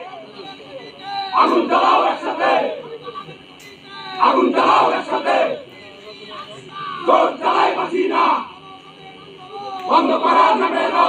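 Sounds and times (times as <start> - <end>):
crowd shouting slogan: 0.0 - 11.0.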